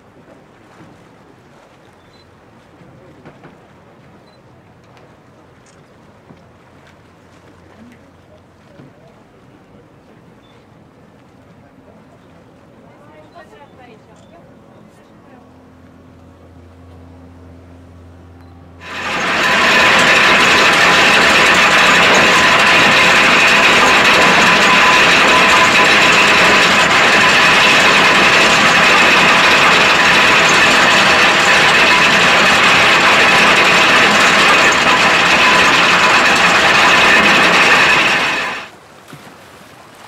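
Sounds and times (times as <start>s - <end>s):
anchor chain rattling: 18.8s - 38.7s.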